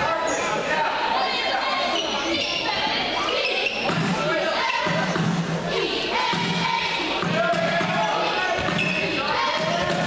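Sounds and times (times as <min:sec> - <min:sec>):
voices echoing in hall: 0:00.0 - 0:10.0
shoe squeaks: 0:00.1 - 0:00.6, 0:01.8 - 0:04.0, 0:08.4 - 0:09.2
basketball bouncing on court: 0:03.8 - 0:04.2, 0:06.3 - 0:10.0.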